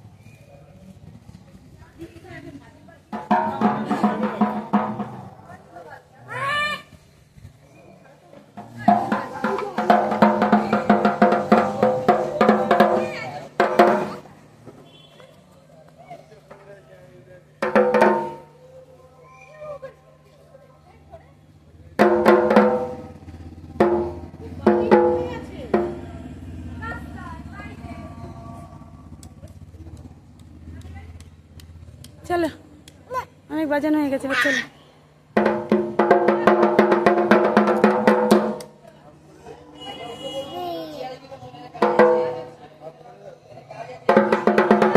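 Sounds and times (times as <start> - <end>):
barrel drum beaten with sticks: 3.1 - 5.4, 8.6 - 14.3, 17.6 - 18.5, 22.0 - 26.2, 35.3 - 38.8, 41.8 - 42.6, 44.1 - 44.9.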